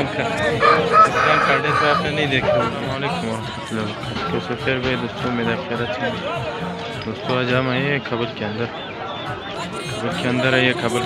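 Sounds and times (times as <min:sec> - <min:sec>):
voices: 0:00.0 - 0:11.0
rooster crowing: 0:00.4 - 0:02.7.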